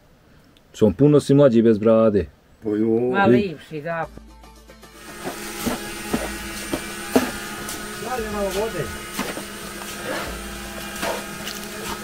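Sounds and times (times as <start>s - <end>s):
steady mechanical hum: 5.0s - 12.0s
trowel scraping wet mortar: 5.0s - 12.0s.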